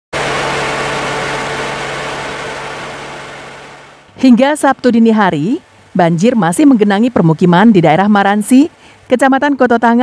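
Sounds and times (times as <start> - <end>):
engine running: 0.1 - 7.8
noisy wash: 0.1 - 10.0.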